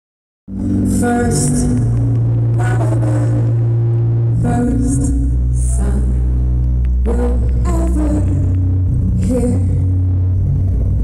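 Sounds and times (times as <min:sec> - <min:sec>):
voice over amplified music: 0:00.5 - 0:11.0.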